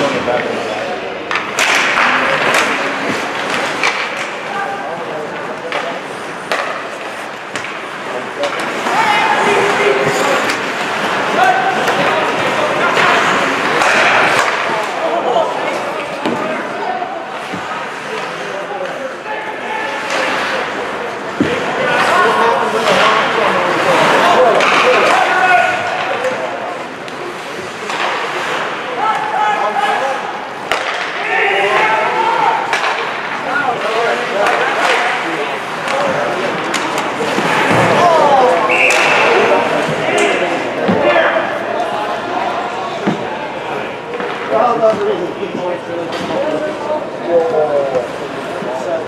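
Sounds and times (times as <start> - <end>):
sticks and puck clacking: 0.0 - 49.0
whistle tone: 38.7 - 39.2.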